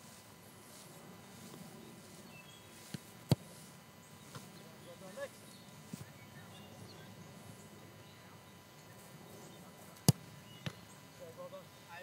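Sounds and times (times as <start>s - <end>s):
ball kicked thump: 10.0s - 10.8s.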